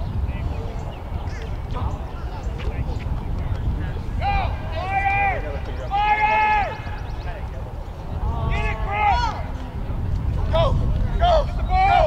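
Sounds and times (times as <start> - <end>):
steady low rumble: 0.0 - 6.0, 6.8 - 11.8.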